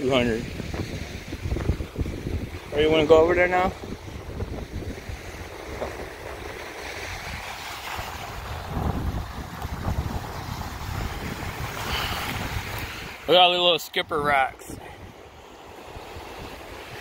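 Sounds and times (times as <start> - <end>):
small waves breaking on sand: 0.0 - 17.0
wind buffeting microphone: 0.0 - 17.0.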